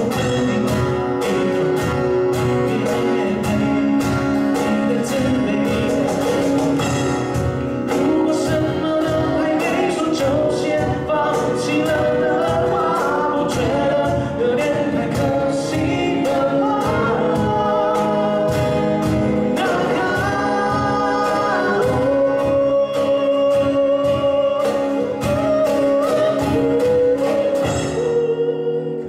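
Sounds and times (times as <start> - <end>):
acoustic guitars: 0.0 - 29.0
cajon beat: 0.0 - 29.0
men singing pop song: 0.0 - 29.0.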